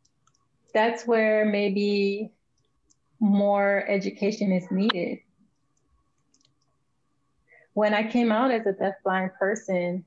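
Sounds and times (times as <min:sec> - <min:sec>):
faint clicks: 0:00.0 - 0:00.5, 0:02.5 - 0:03.1, 0:04.8 - 0:06.8
thin steady hum: 0:00.0 - 0:10.0
person speaking: 0:03.2 - 0:05.2.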